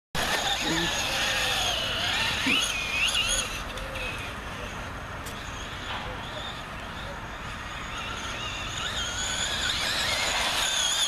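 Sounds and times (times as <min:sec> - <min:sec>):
distant electric toy truck whine: 0:00.2 - 0:11.0.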